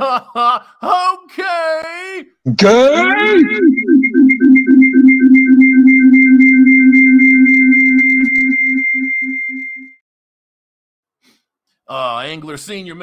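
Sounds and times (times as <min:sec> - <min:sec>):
pulsing synthesized electronic tones: 0:02.5 - 0:10.0.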